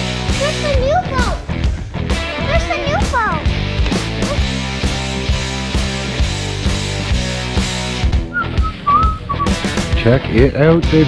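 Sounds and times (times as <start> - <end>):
high whistled melody: 8.3 - 9.6.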